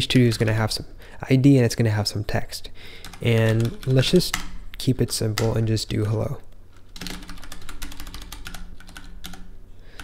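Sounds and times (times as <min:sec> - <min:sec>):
computer keyboard typing: 0:03.0 - 0:04.5, 0:06.8 - 0:10.0.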